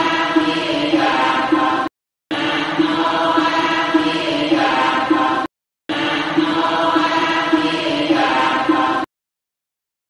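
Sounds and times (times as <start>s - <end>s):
chanting voices on low pitch: 0.0s - 9.1s.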